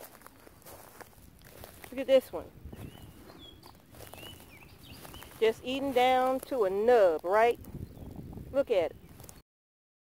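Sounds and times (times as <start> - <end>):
footsteps on wood-chip mulch: 0.0 - 9.4.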